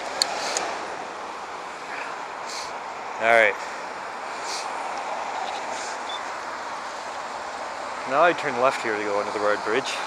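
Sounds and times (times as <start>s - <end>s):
vehicle tyres passing on road: 0.0s - 10.0s.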